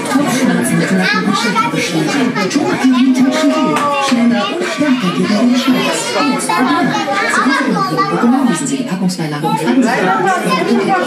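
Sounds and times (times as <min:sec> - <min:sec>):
women and children chattering: 0:00.0 - 0:11.0.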